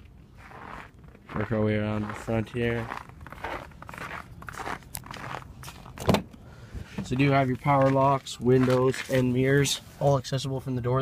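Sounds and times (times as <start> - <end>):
footsteps on snow: 0.3 - 6.0, 7.1 - 9.4.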